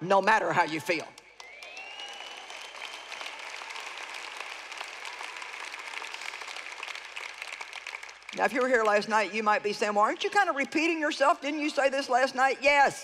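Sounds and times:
crowd applauding: 0.9 - 11.2.

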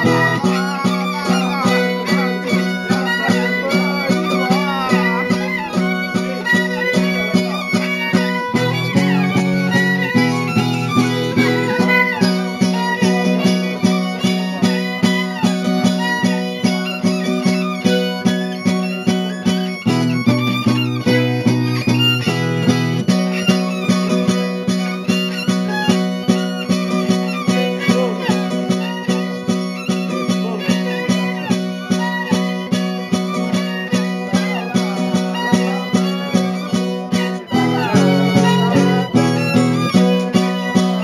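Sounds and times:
fiddle melody: 0.0 - 41.0
strummed folk guitar: 0.0 - 41.0.

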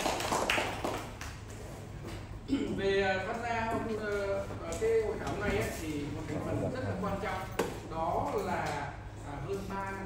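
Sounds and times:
small group clapping: 0.0 - 1.6.

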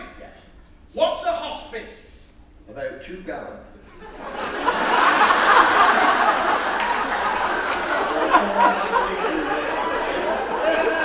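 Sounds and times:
indistinct chatter of voices: 5.5 - 11.0.

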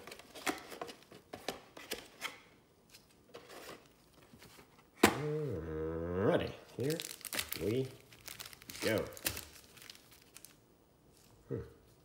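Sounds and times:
foil wrappers crinkling: 6.8 - 11.4.

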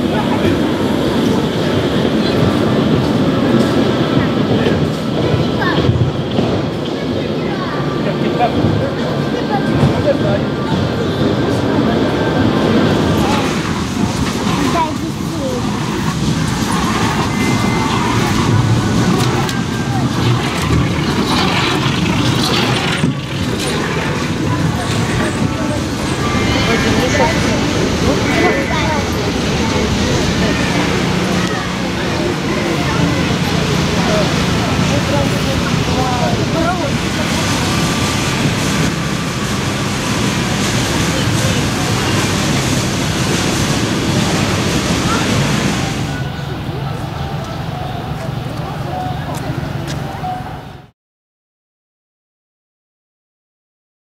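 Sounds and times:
kiddie ride rumbling: 0.0 - 50.9
people's voices: 0.0 - 50.9.

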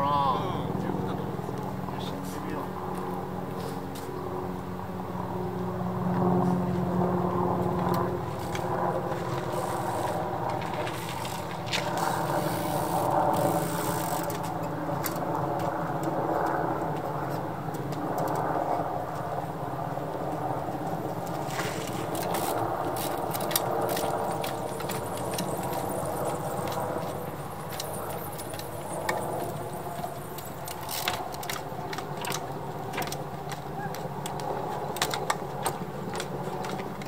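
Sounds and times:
low engine drone: 0.0 - 15.3, 20.4 - 32.8
bicycle clicks and knocks: 7.8 - 16.2, 21.2 - 37.0.

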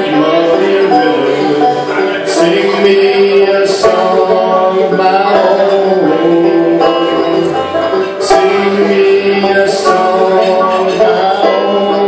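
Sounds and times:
banjo playing slow melody: 0.0 - 12.0.

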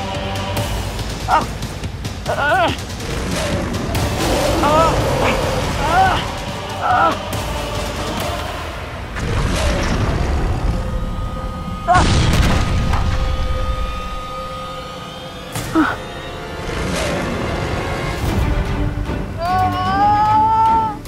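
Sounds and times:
sustained drone: 2.8 - 19.3
booming hits: 9.1 - 14.6.

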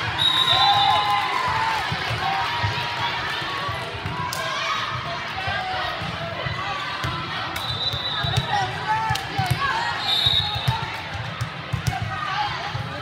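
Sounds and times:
babble of many voices: 1.4 - 13.0.

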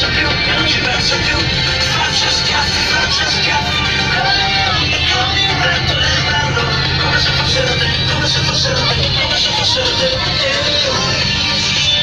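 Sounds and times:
bus engine droning: 0.0 - 12.0
music: 0.0 - 12.0
voices: 0.0 - 12.0.

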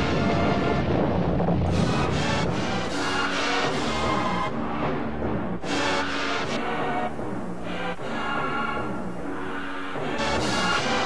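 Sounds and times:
dramatic instrumental music: 0.0 - 11.0.

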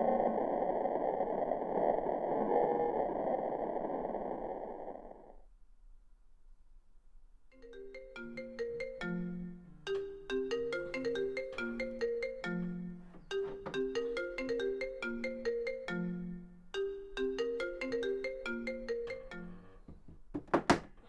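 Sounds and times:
marimba phone ringtone: 7.6 - 19.8.

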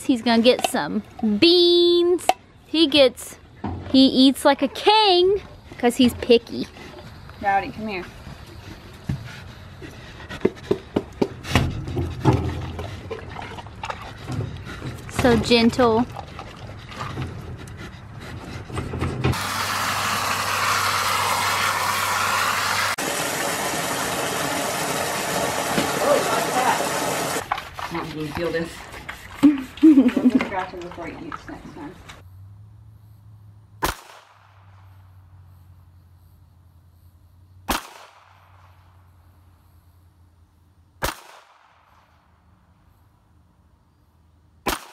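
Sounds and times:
boar snuffling and snorting: 4.4 - 19.4, 27.4 - 33.3
handgun shots with echo: 37.7 - 38.4, 41.0 - 41.8, 44.6 - 44.9.

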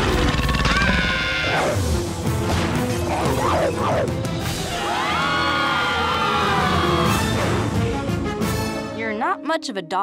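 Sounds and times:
cartoon background music: 0.0 - 10.0
children screaming: 4.6 - 7.3.

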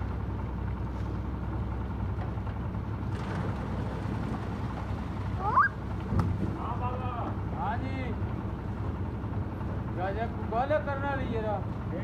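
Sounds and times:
concrete mixer engine humming: 0.0 - 12.0.

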